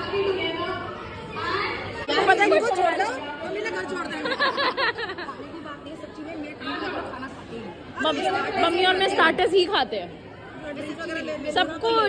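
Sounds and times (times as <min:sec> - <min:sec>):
crowd chatter: 0:00.0 - 0:12.0
women chatting: 0:00.0 - 0:12.0.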